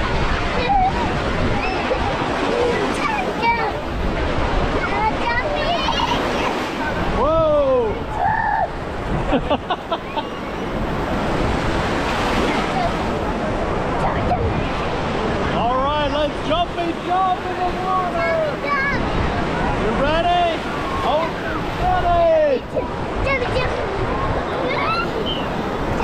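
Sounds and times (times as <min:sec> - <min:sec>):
ocean surf washing and breaking: 0:00.0 - 0:26.0
children calling out: 0:00.2 - 0:03.9, 0:04.8 - 0:07.0, 0:08.0 - 0:08.8.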